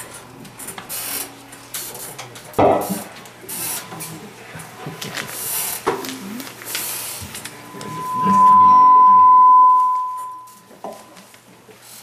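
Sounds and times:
microphone feedback tone: 0:07.5 - 0:10.7.

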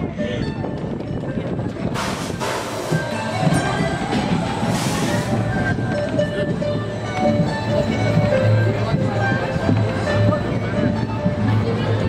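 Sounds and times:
roller coaster wheels rumbling: 0:00.0 - 0:12.0.

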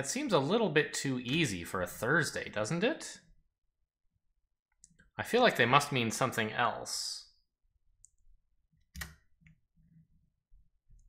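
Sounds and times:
computer click: 0:09.0 - 0:09.2.

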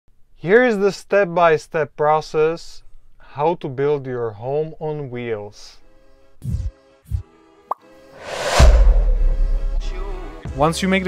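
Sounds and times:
quick rising blip: 0:07.7 - 0:09.8
deep thuds: 0:08.3 - 0:10.0.

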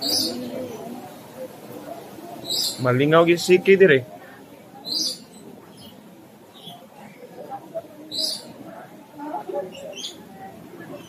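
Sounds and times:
faint chatter of people: 0:00.0 - 0:11.0.

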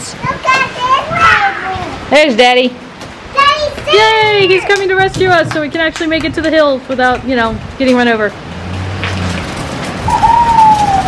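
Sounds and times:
van driving with rushing hiss: 0:08.4 - 0:11.0.

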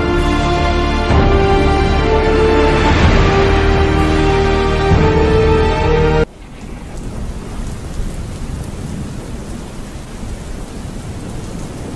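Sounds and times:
steady rain falling: 0:00.0 - 0:11.9
low rumble of thunder: 0:06.2 - 0:11.9.

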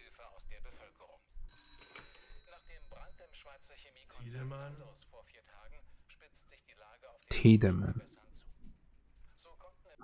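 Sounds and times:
telephone ringing: 0:01.5 - 0:04.2
news report voice: 0:02.4 - 0:08.4.

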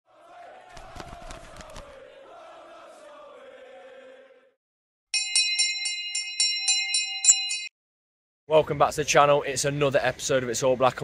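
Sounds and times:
small bell ringing rapidly: 0:05.2 - 0:07.7.

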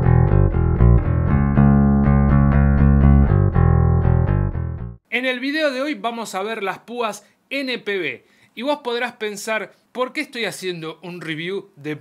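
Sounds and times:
electric bass guitar picked: 0:00.0 - 0:05.0.

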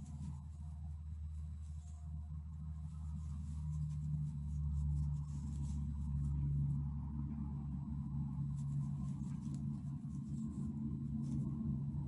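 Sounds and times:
crochet hook scratching yarn: 0:00.0 - 0:07.0, 0:08.0 - 0:12.0
steady low hum: 0:00.0 - 0:12.0.

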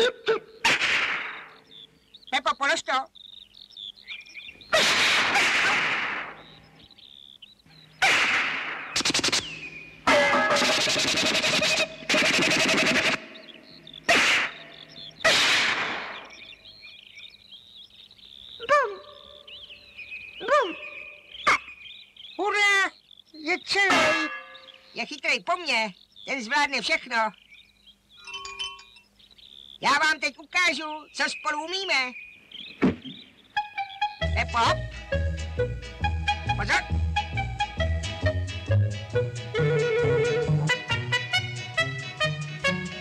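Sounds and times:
cartoon crashing and clanging: 0:14.1 - 0:14.6
squeaky gliding calls: 0:20.4 - 0:25.2, 0:32.6 - 0:34.4.

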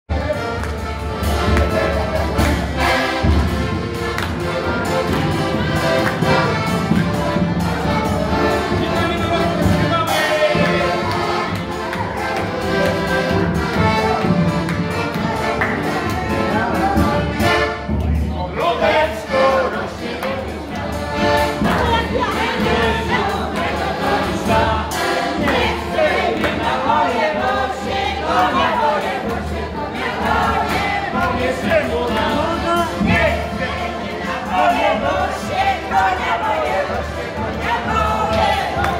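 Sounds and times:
accordion folk tune with band: 0:00.1 - 0:38.9
people clapping along: 0:00.2 - 0:18.2, 0:18.8 - 0:38.9.

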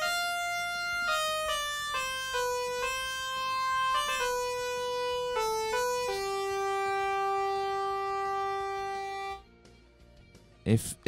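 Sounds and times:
synthesizer playing held notes: 0:00.0 - 0:09.4.

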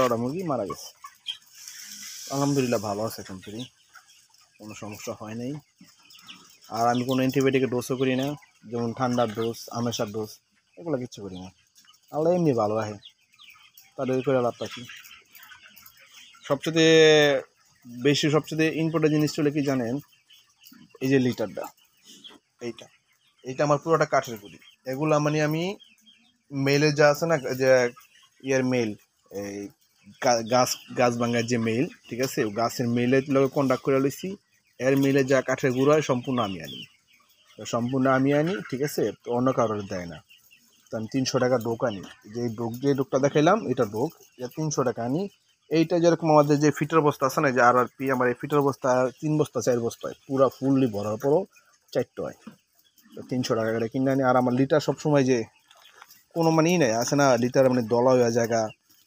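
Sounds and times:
man talking: 0:00.0 - 0:03.8, 0:04.5 - 0:06.0, 0:06.6 - 0:13.1, 0:13.9 - 0:15.1, 0:16.3 - 0:20.1, 0:20.9 - 0:21.8, 0:22.6 - 0:25.8, 0:26.5 - 0:36.9, 0:37.6 - 0:40.3, 0:40.9 - 0:55.6, 0:56.2 - 0:58.8
chickens chattering: 0:00.0 - 0:59.0
man's voice: 0:06.7 - 0:11.5, 0:26.5 - 0:36.9, 0:56.4 - 0:58.7.

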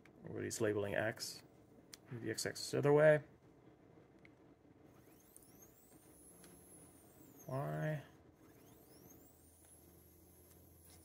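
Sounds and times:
low steady hum: 0:00.0 - 0:11.0
high-pitched stepper motor whine: 0:04.9 - 0:11.0.

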